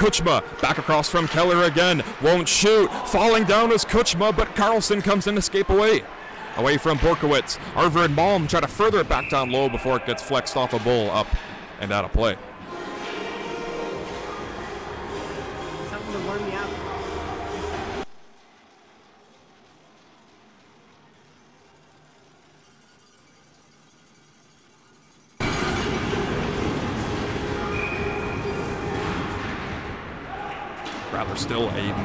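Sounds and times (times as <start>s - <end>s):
ice hockey arena din: 0.0s - 32.0s.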